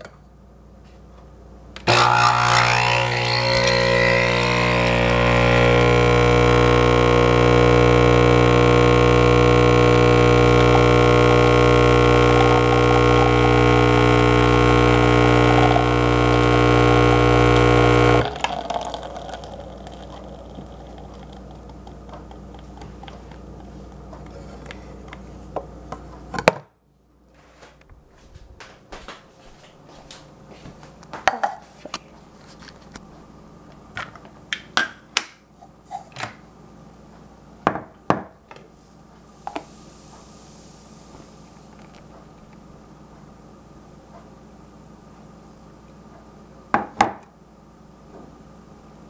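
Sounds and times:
espresso pump buzzing hum: 1.8s - 25.9s.

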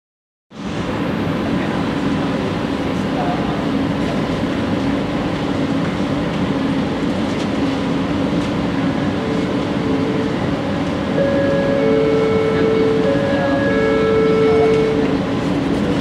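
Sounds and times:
train equipment hum: 0.5s - 16.0s.

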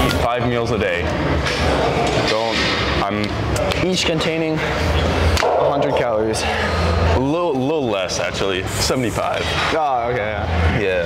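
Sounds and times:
gym background din: 1.2s - 7.6s.

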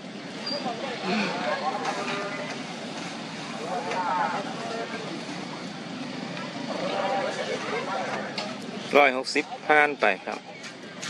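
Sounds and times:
onlookers talking: 0.0s - 11.0s.

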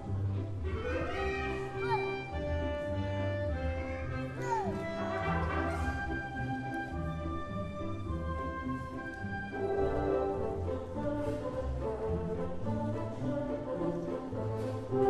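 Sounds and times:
symphony orchestra with brass: 0.0s - 15.0s.

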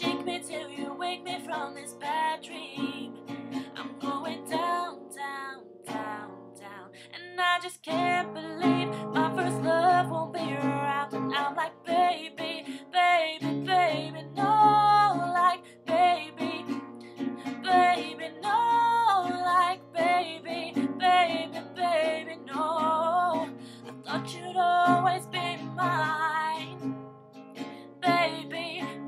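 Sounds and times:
strummed acoustic guitar: 0.0s - 7.1s, 7.9s - 29.0s
woman singing pop melody: 0.0s - 26.8s, 27.9s - 29.0s.

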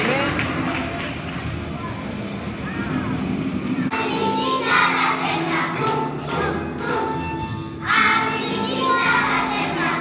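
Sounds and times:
backing music: 3.2s - 10.0s
children singing a carol: 3.9s - 10.0s.

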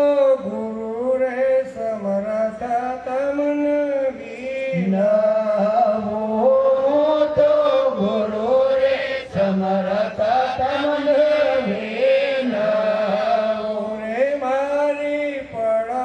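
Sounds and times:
man singing a chant: 0.0s - 16.0s.

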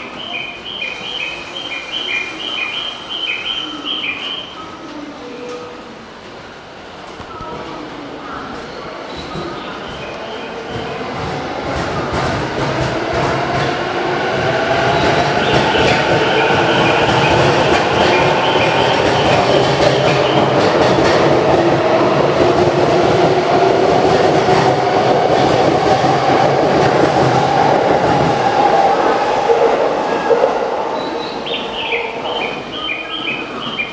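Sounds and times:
train wheels rumbling on rails: 5.5s - 33.9s.

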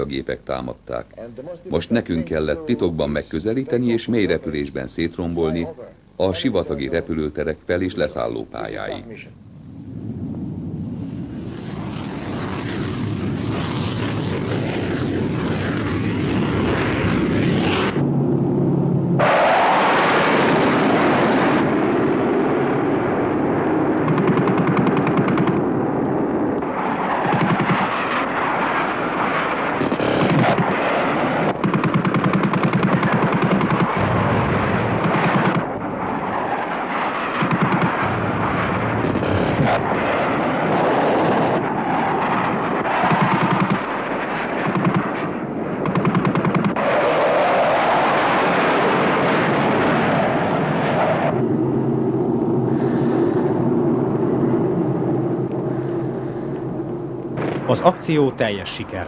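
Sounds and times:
jet aircraft noise: 0.0s - 59.0s
rapid aircraft cannon fire: 11.3s - 18.3s, 19.2s - 56.5s, 57.3s - 59.0s.

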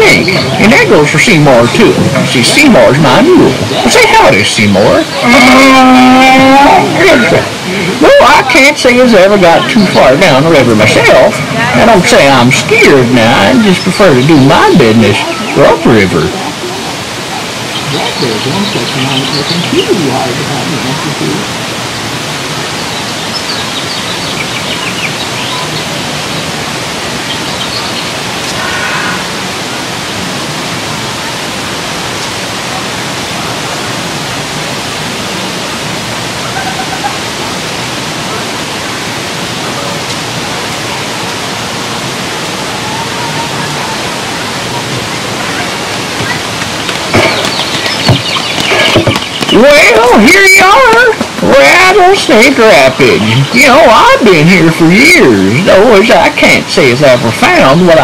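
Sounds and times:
people talking: 0.0s - 22.7s, 28.4s - 41.5s, 42.3s - 58.0s
rushing water: 0.0s - 58.0s
footsteps: 44.9s - 49.6s.

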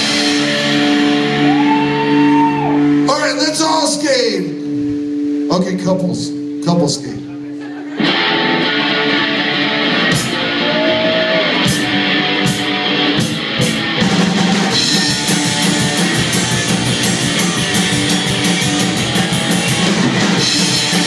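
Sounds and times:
rockabilly band playing: 0.0s - 4.8s, 6.6s - 21.0s.

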